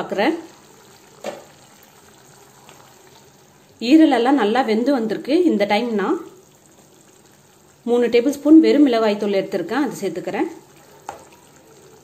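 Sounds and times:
liver simmering in a pan: 0:00.0 - 0:12.0.

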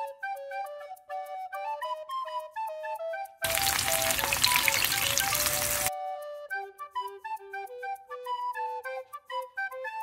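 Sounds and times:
light background music: 0:00.0 - 0:10.0
garlic sizzling in hot oil: 0:03.4 - 0:05.9.

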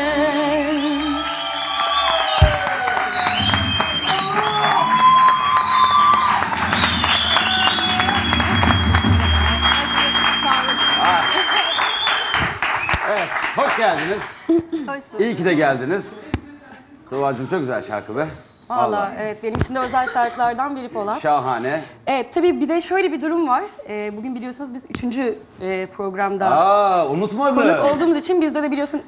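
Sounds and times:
audience clapping and cheering: 0:00.9 - 0:14.4
band music: 0:06.8 - 0:12.1.

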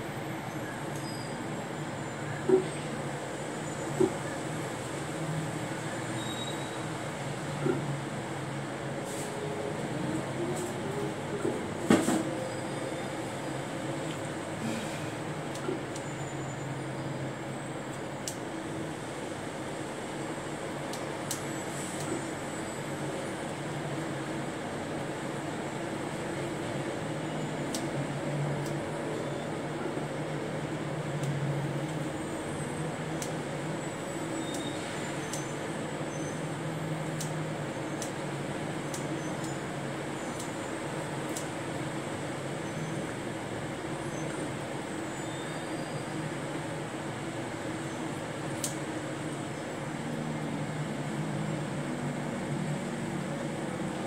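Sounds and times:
low mechanical hum: 0:00.0 - 0:54.0.

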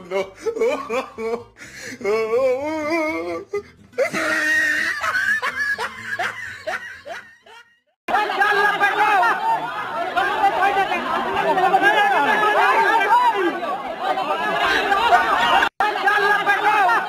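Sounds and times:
voices chattering and snickering: 0:08.1 - 0:17.0.

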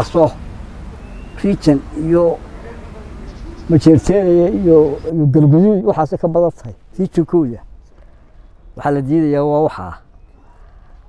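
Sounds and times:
elderly man speaking: 0:00.0 - 0:00.4, 0:01.4 - 0:07.8, 0:08.8 - 0:10.1.

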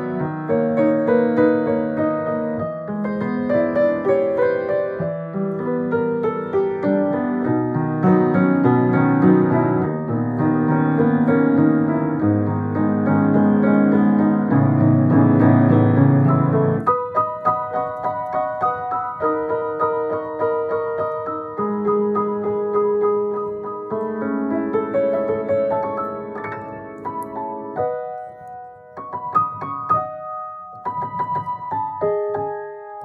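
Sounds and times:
solo piano playing pop song: 0:00.0 - 0:33.0.

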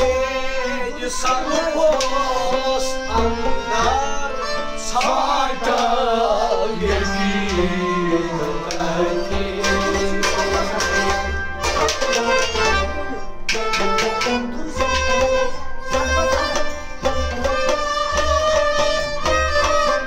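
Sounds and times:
sustained melody line: 0:00.0 - 0:20.0.

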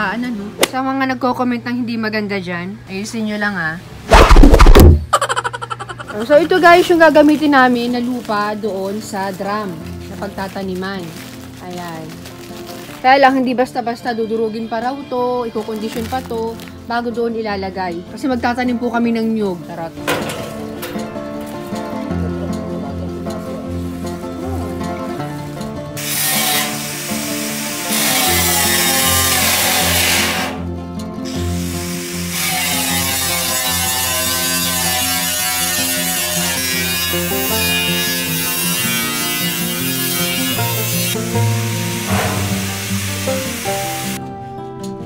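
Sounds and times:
background music: 0:05.9 - 0:45.0
angle grinder cutting steel: 0:26.0 - 0:30.6, 0:31.3 - 0:44.2.

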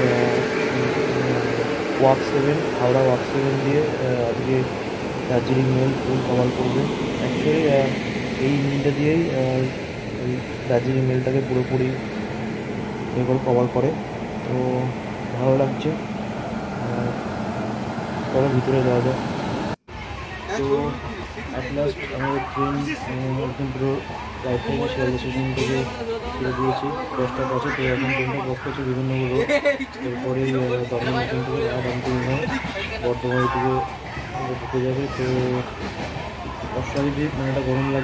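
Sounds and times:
electric locomotive humming: 0:00.0 - 0:38.0.

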